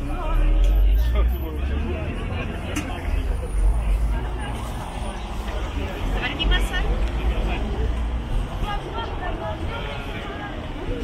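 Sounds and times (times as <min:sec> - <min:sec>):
chatter of passers-by: 0:00.0 - 0:11.0
city traffic rumble: 0:00.0 - 0:11.0.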